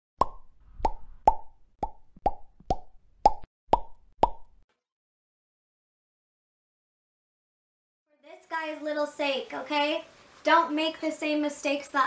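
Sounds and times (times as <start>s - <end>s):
cartoon plop pop: 0.2s - 4.6s.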